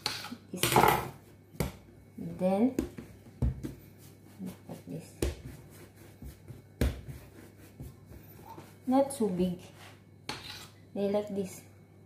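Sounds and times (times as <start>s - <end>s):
hands patting and rubbing dough: 1.2s - 9.8s.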